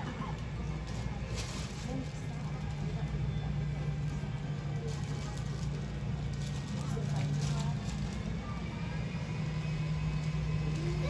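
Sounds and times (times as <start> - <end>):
faint background voices: 0.0 - 11.0
low mechanical hum: 0.0 - 11.0.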